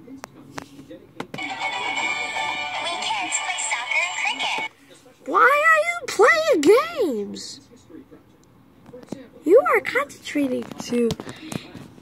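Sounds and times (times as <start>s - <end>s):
video music: 1.4s - 4.7s.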